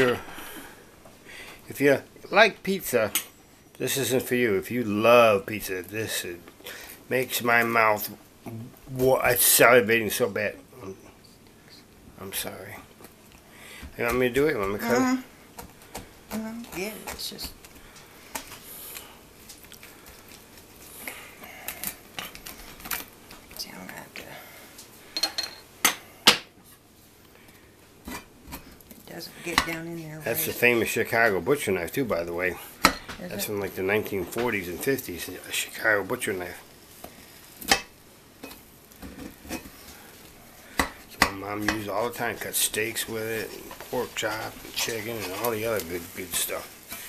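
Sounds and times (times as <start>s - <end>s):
knife scraping against skillet: 28.0s - 28.8s, 38.4s - 40.0s, 43.4s - 47.0s
pizza cutter rolling through pizza: 41.7s - 47.0s.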